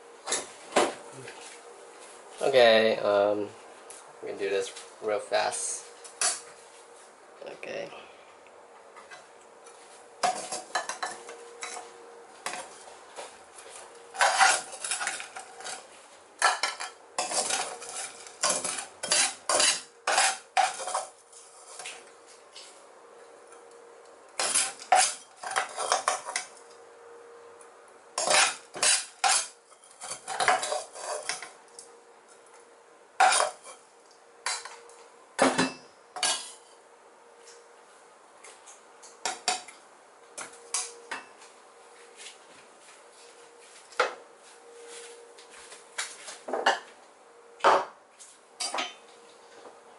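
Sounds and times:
metal utensils scraping a pan: 14.1s - 21.8s, 24.4s - 26.4s, 28.2s - 31.5s, 33.2s - 33.8s.

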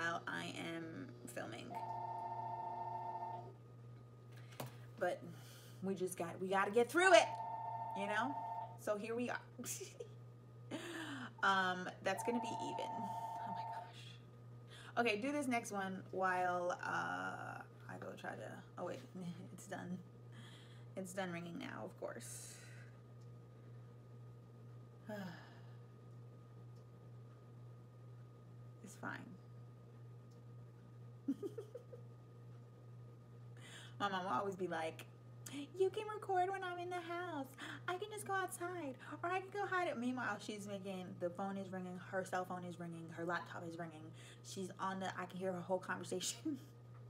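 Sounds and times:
low steady hum: 0.0s - 47.0s
telephone ringing: 1.7s - 3.5s, 7.1s - 8.8s, 12.1s - 13.9s
woman sighing: 25.1s - 25.8s.

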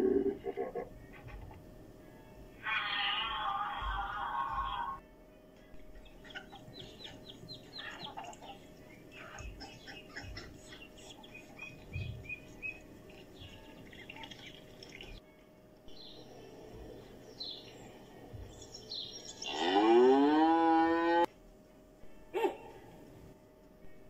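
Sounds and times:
cow mooing: 2.6s - 5.0s, 19.4s - 21.3s
ducklings peeping: 5.9s - 15.2s, 16.9s - 19.8s.

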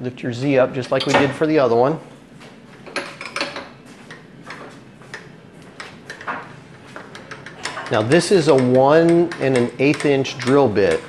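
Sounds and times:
light metallic clicks and taps: 7.1s - 11.0s.

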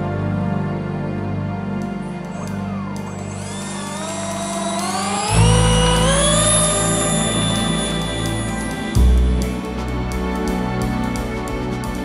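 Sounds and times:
background music: 0.0s - 12.0s
electric ducted fans whining: 1.7s - 12.0s.

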